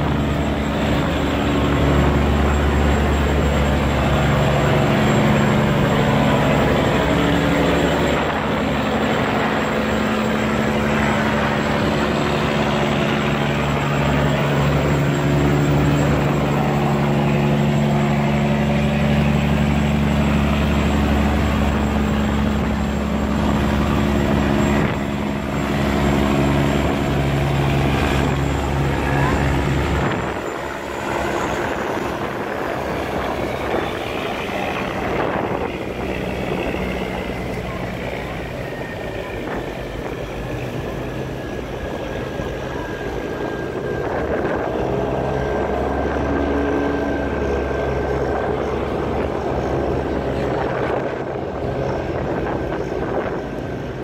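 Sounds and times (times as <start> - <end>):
boat engine running: 0.0 - 54.0
water churning and rushing: 0.0 - 54.0.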